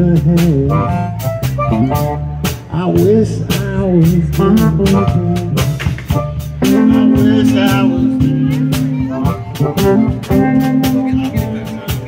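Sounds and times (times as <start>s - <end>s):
drum kit cymbal beat: 0.0s - 12.0s
electric bass notes: 0.0s - 12.0s
live blues band playing: 0.0s - 12.0s
electric guitar notes: 4.4s - 12.0s.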